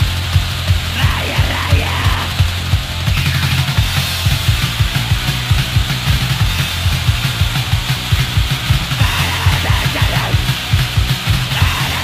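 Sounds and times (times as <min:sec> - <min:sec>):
distorted guitar: 0:00.0 - 0:12.0
hardcore punk music: 0:00.0 - 0:12.0
rapid drum hits: 0:00.0 - 0:12.0.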